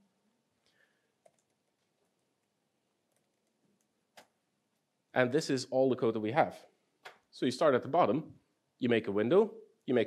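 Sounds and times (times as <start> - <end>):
keyboard typing clicks: 1.2 - 1.6.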